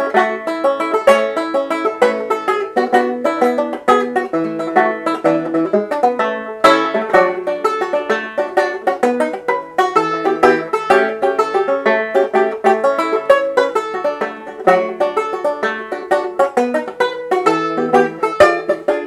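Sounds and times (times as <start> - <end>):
fingerstyle banjo: 0.0 - 19.0.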